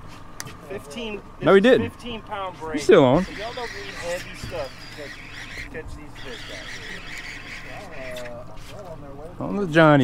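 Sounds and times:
faint voices: 0:00.8 - 0:09.8
fishing reel whirring: 0:03.2 - 0:08.3.

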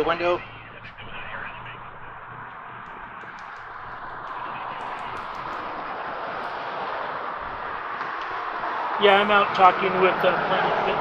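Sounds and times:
low hum: 0:00.0 - 0:09.0
road traffic hiss: 0:00.0 - 0:11.0.

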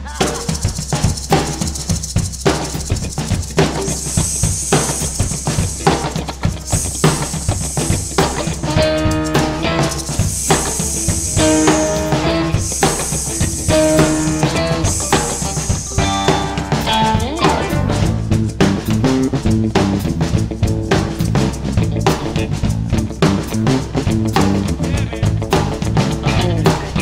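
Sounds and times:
cymbal washes: 0:00.0 - 0:19.6
drum kit beat: 0:00.0 - 0:27.0
guitar: 0:00.0 - 0:27.0.

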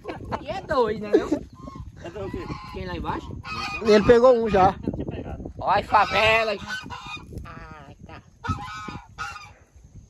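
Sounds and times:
geese honking: 0:01.6 - 0:04.8, 0:05.8 - 0:09.7.

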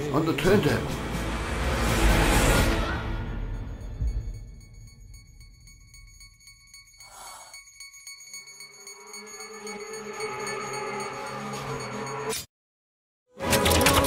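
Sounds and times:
dark suspense music: 0:00.0 - 0:07.4, 0:08.5 - 0:12.4.

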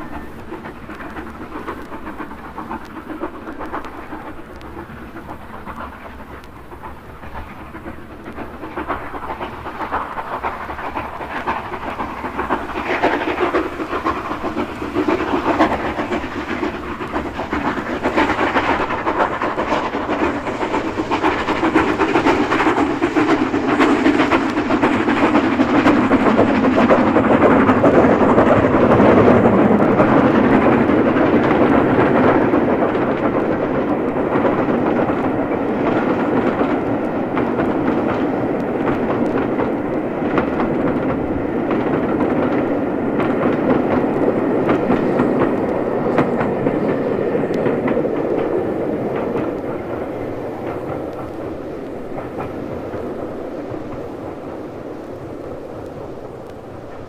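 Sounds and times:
steam train running past: 0:00.0 - 0:57.0
wheels clicking over rail joints: 0:00.0 - 0:57.0.

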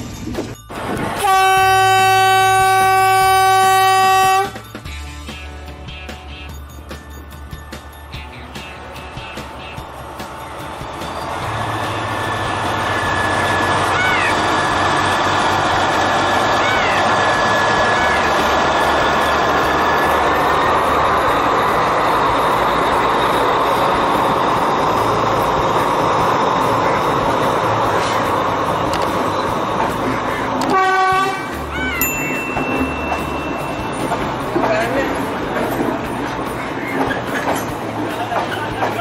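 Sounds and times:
train engine and carriages rumbling: 0:00.0 - 0:39.0
train horn toot: 0:01.2 - 0:04.6, 0:30.6 - 0:31.6.

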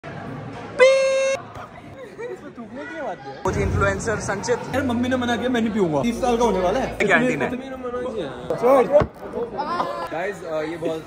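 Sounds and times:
sharp thump: 0:03.5 - 0:05.0.

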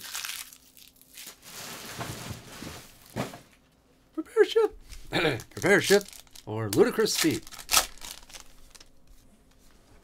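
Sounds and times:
packaging rustling: 0:04.8 - 0:09.0.

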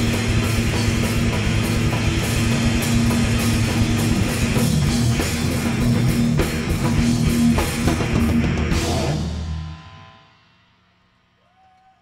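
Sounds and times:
rock band chord: 0:00.0 - 0:10.8.

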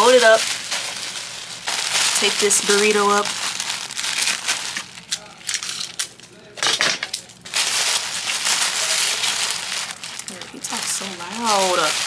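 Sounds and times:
tissue paper crinkling: 0:00.0 - 0:06.0, 0:07.4 - 0:12.0.

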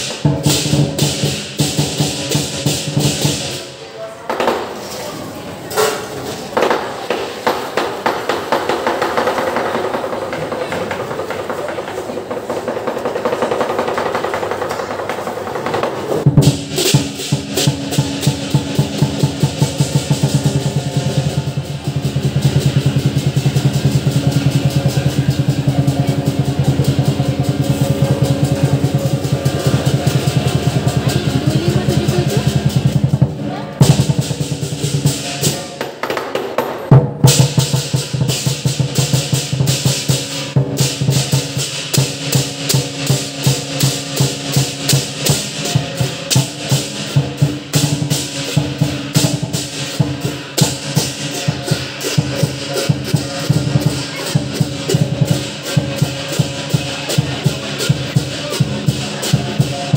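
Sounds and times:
big drum beating: 0:00.0 - 0:03.7, 0:13.3 - 0:36.0, 0:36.9 - 0:59.9
clashing cymbals: 0:00.0 - 0:03.9, 0:16.2 - 0:35.8, 0:37.0 - 0:59.9
gong: 0:16.5 - 0:35.8.

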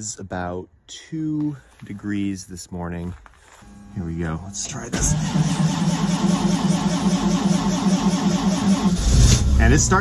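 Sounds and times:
engine firing: 0:04.8 - 0:10.0
starter motor cranking engine: 0:04.9 - 0:09.5.

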